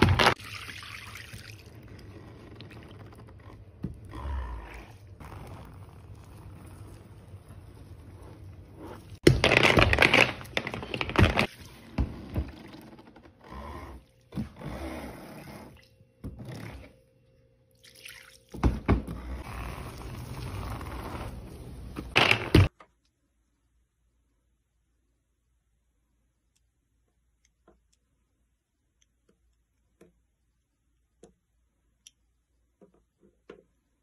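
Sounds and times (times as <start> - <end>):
wax cracking: 5.2 - 11.5
molten wax pouring: 5.2 - 12.8, 19.4 - 22.1.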